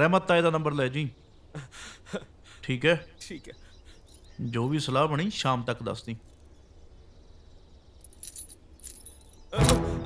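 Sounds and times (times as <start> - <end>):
small metal objects jingling: 4.0 - 4.4, 6.0 - 6.6, 8.0 - 9.6.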